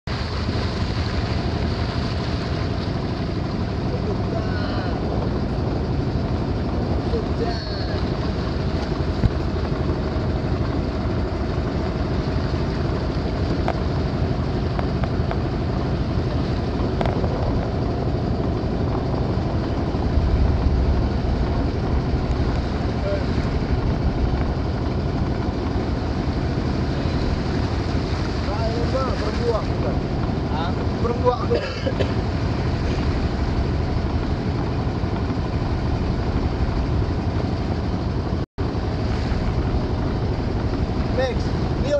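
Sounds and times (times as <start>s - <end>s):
boat engine running: 0.0s - 41.9s
water washing past hull: 0.0s - 41.9s.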